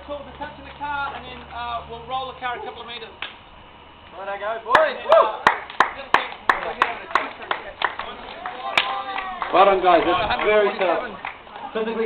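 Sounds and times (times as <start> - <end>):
men's voices: 4.1 - 12.0
hands clapping rhythmically: 4.7 - 11.7.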